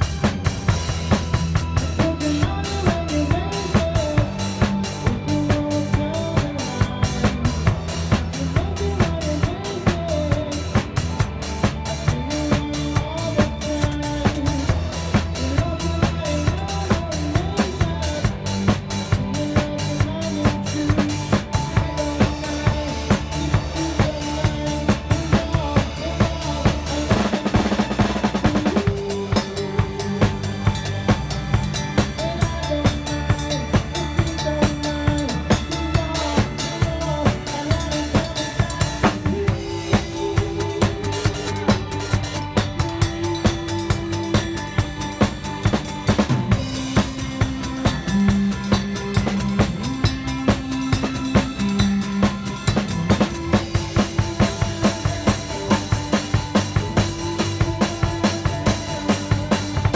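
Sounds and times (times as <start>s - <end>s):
drum kit groove: 0.0s - 59.9s
pitched backing track: 0.0s - 59.9s.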